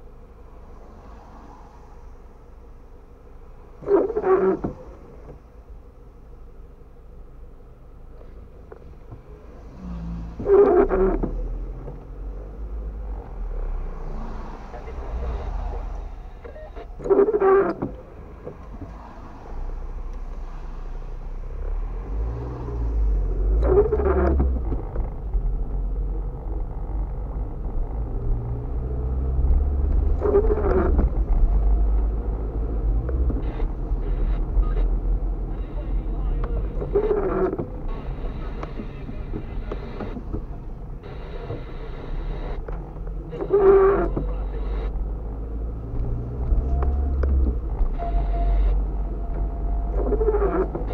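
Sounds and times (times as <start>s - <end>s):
car engine and tyres rumbling: 0.0s - 50.9s
windscreen wipers squeaking: 3.6s - 5.6s, 8.2s - 50.9s.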